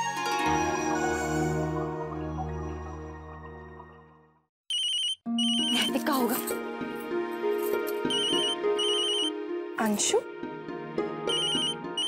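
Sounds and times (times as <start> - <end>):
background music: 0.0 - 4.4, 5.3 - 12.0
telephone ringing: 4.7 - 5.9, 8.1 - 9.3, 11.3 - 12.0.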